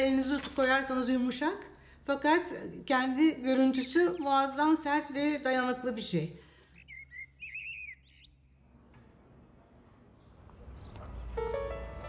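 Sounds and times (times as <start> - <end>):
faint high bird chirps: 6.7 - 9.1.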